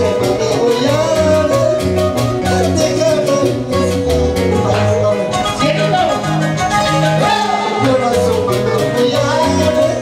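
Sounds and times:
bass line: 0.0s - 10.0s
live band playing latin dance music: 0.0s - 10.0s
person singing: 0.0s - 10.0s.

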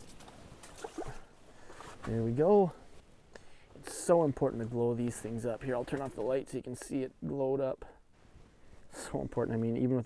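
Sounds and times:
water and handling noise: 0.0s - 2.4s.

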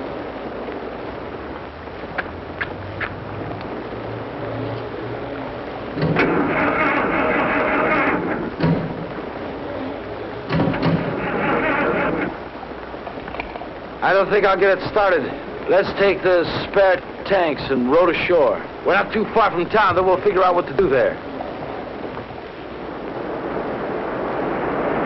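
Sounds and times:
boat engine cranking: 6.0s - 9.2s, 10.5s - 12.4s.

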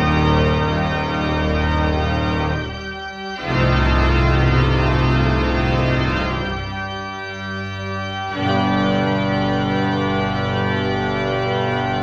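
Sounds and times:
pipe organ sustained chords: 0.0s - 12.0s.

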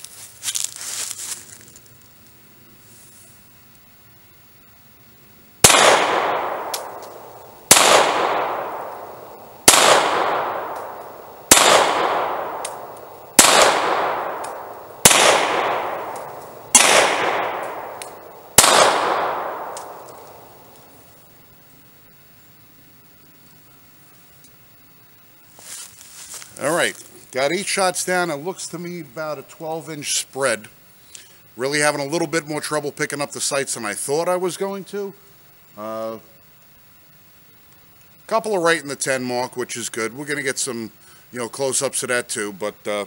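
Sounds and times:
pistol shots echoing: 5.6s - 20.9s.

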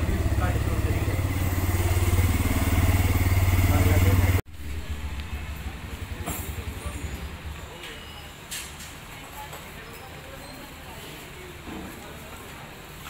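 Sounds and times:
engine rumble: 0.0s - 9.2s
outdoor ambience: 0.0s - 13.0s.

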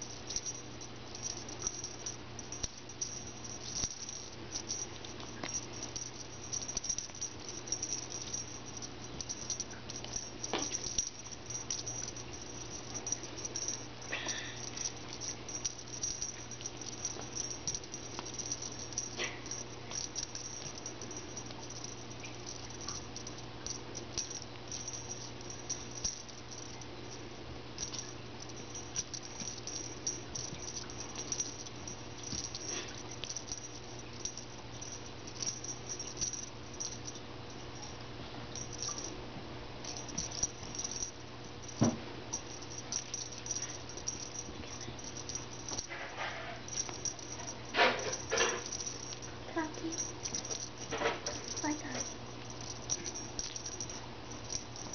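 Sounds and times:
kittens rustling and scuffling: 0.0s - 54.9s.

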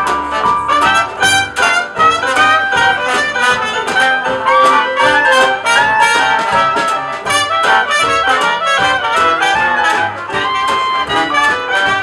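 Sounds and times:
brass horns: 0.0s - 12.0s
swing jazz band playing: 0.0s - 12.0s.

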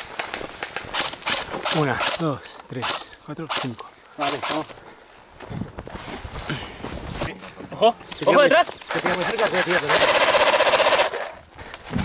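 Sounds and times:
airsoft rifle automatic fire: 8.9s - 11.3s.

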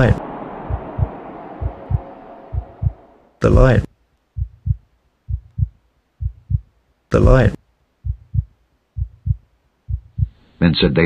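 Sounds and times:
heartbeat thumps: 0.0s - 3.8s, 4.4s - 10.4s.

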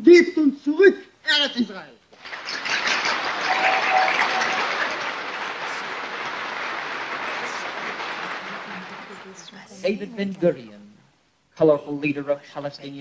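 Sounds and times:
audience applause: 2.2s - 10.0s.

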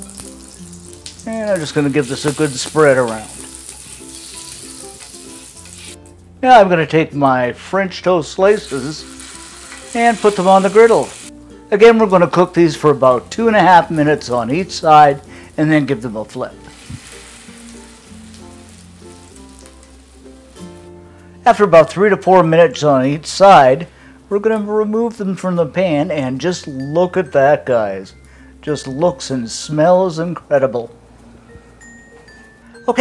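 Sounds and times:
butter and oil sizzling on griddle: 0.0s - 6.1s, 8.5s - 11.3s, 12.4s - 21.0s
background music: 0.0s - 33.0s.

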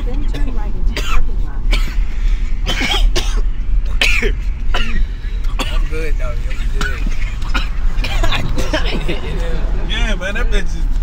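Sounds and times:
car cabin rumble: 0.0s - 11.0s
person coughing: 1.0s - 9.3s.

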